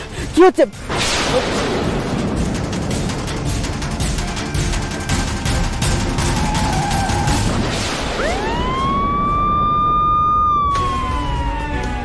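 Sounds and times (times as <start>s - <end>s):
ambulance siren wailing: 6.2s - 12.0s.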